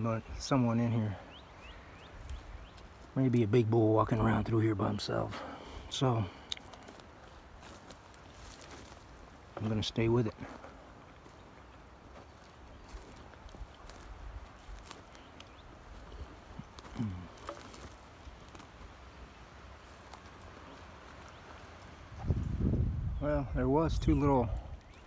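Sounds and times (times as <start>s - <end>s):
footsteps through dry grass: 1.0s - 23.1s, 24.0s - 25.0s
low grunt: 16.9s - 17.5s
wind rumbling on microphone: 21.4s - 25.0s.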